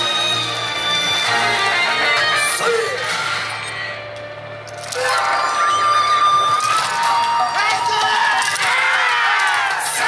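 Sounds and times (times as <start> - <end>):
voices shouting and cheering: 4.9 - 10.0.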